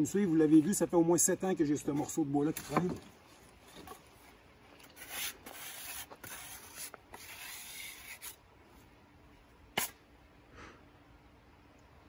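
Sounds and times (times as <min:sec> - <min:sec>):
scratchy rubbing and rustling: 0:04.8 - 0:08.4.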